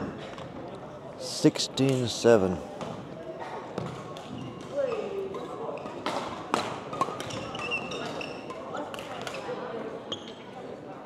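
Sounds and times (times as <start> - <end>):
murmur of the hall: 0.0 - 11.0
shoes squeaking on court floor: 3.8 - 6.0, 6.9 - 10.6.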